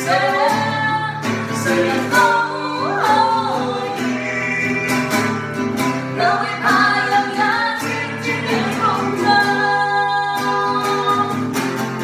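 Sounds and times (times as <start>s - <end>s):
woman and man singing duet: 0.0s - 5.5s, 6.1s - 11.5s
strummed nylon-string guitar: 0.0s - 12.0s.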